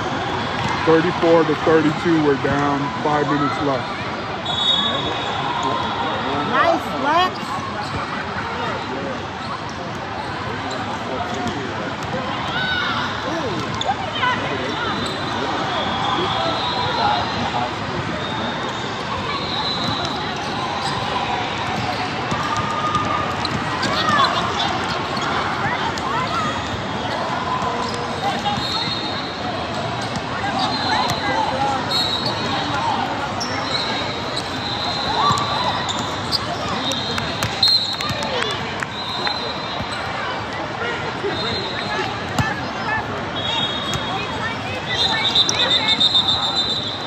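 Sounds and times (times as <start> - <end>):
chatter of people: 0.0 - 47.0
sneakers squeaking: 6.5 - 47.0.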